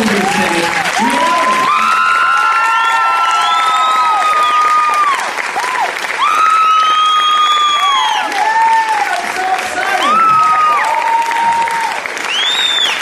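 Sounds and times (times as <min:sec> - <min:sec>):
audience applauding and cheering: 0:00.0 - 0:13.0
long drawn-out whoops: 0:01.0 - 0:09.2, 0:09.9 - 0:13.0.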